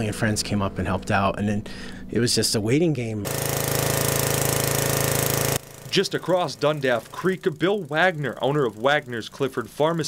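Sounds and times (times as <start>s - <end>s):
machine running with fast pulse: 3.2s - 10.0s.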